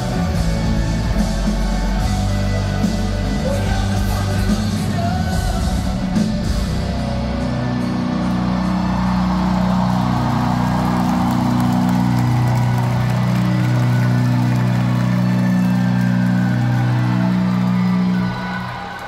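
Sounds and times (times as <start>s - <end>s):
live rock band sustained chords: 0.0s - 19.0s.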